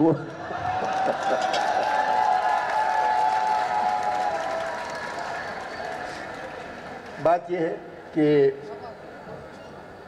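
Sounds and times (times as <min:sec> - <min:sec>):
crowd cheering and calling out: 0:00.3 - 0:06.8.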